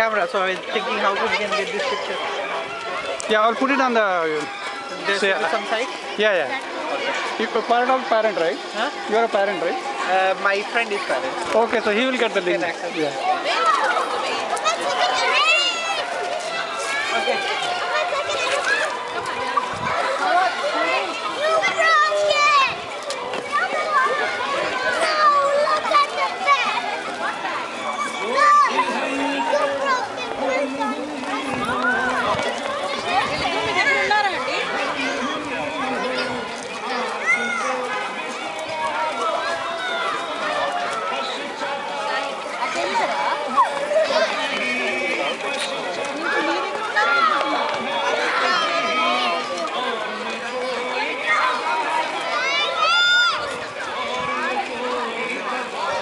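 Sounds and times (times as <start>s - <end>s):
adult voices: 0.0s - 56.0s
children shouting while playing: 13.3s - 56.0s
child's high-pitched shout: 21.4s - 22.7s.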